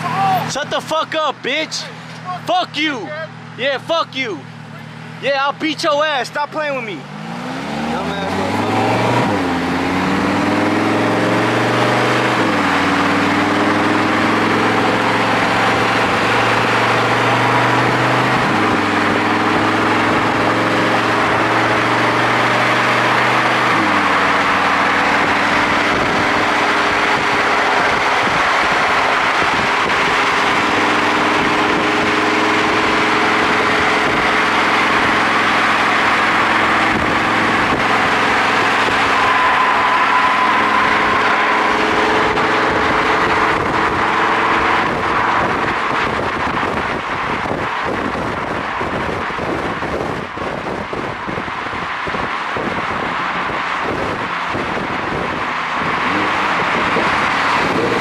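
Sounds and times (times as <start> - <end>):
car engines running: 0.0 - 58.0
road and wind noise: 0.0 - 58.0.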